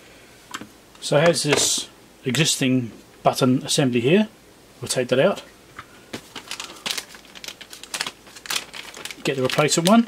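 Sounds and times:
plastic bag crinkling: 0:06.2 - 0:10.0.

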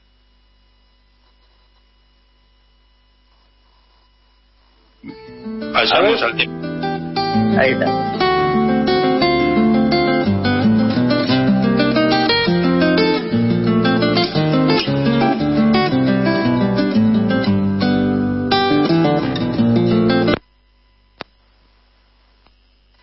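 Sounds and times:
acoustic guitar folk music: 0:05.0 - 0:20.4
faint click: 0:21.2 - 0:21.4, 0:22.4 - 0:23.0.

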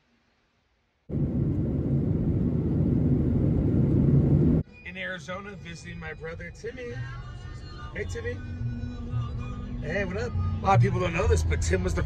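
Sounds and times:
jet cabin rumble in flight: 0:01.1 - 0:04.6.

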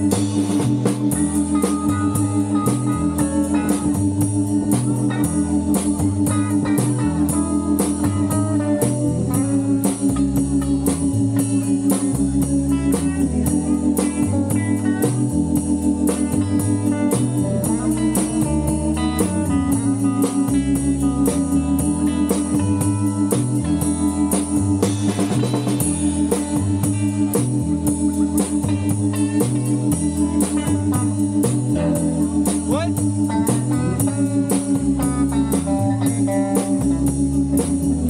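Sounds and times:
bass line: 0:00.0 - 0:38.0
drum kit beat: 0:00.0 - 0:38.0
electric guitar: 0:00.0 - 0:38.0
organ chords: 0:00.0 - 0:38.0.

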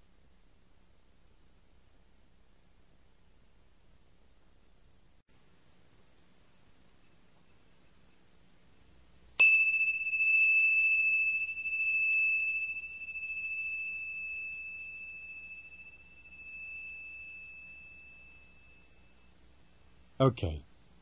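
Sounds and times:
bell-like chime ringing: 0:09.4 - 0:19.4.

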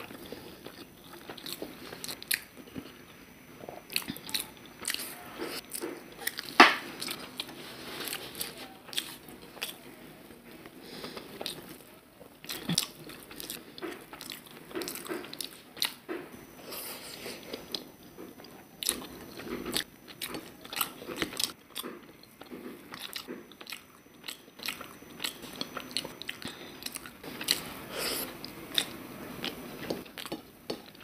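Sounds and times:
close chewing: 0:00.0 - 0:16.1, 0:17.4 - 0:31.0.

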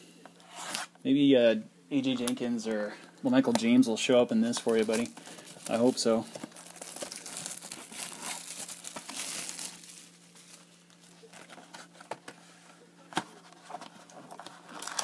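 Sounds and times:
plastic shrink wrap crinkling: 0:04.4 - 0:12.1, 0:13.4 - 0:15.0.

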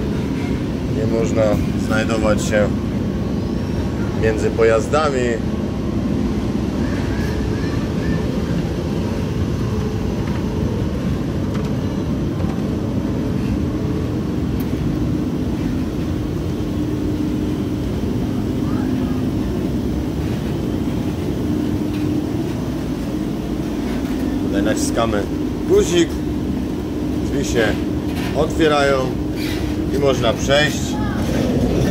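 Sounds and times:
steady hum: 0:00.0 - 0:31.9
train rumbling in a tunnel: 0:00.0 - 0:31.9.

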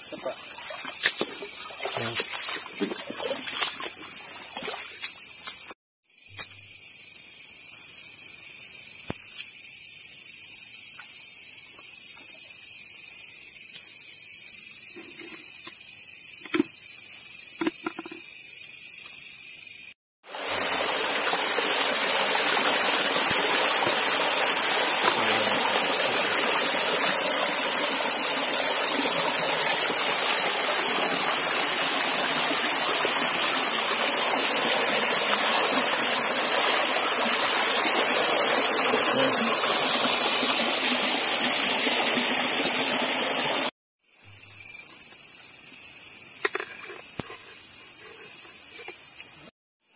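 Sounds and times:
creek water rushing and splashing: 0:00.0 - 0:05.1, 0:20.2 - 0:43.7
high-pitched hiss: 0:00.0 - 0:49.9.

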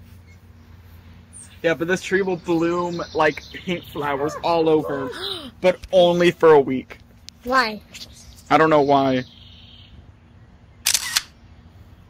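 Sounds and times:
smartphone camera shutter: 0:10.8 - 0:11.4.

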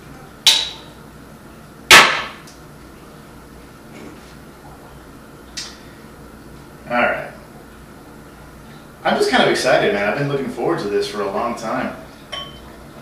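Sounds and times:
glass clinking: 0:12.3 - 0:12.7.

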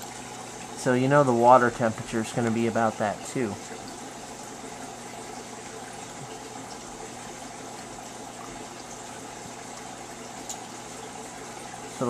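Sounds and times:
tank filter water hiss: 0:00.0 - 0:12.0.

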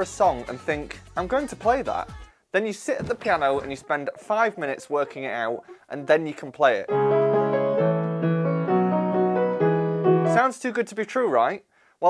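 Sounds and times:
grand piano chords: 0:06.9 - 0:10.5.

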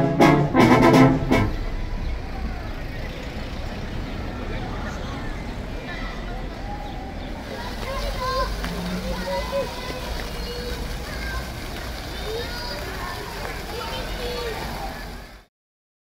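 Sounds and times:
brass band chord: 0:00.0 - 0:01.8
voices of passers-by: 0:00.0 - 0:15.5.

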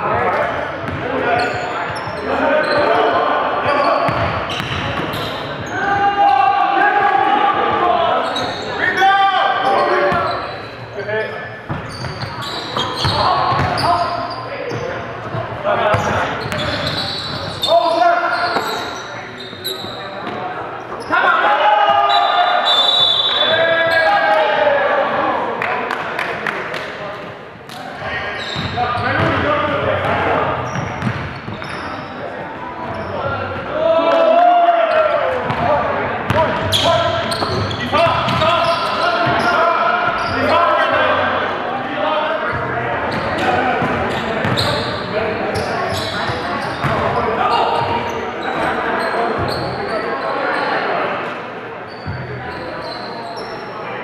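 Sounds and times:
players calling out: 0:27.7 - 0:51.0.

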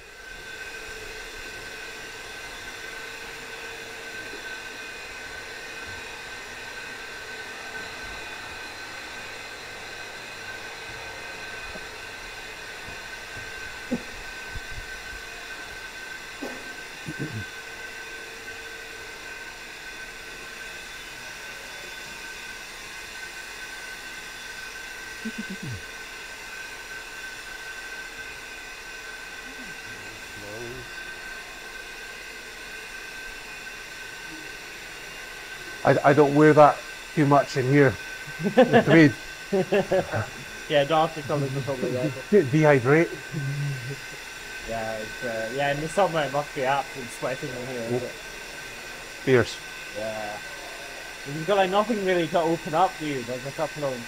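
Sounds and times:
constant high whine: 0:00.0 - 0:54.0
machinery hum: 0:00.0 - 0:54.0.

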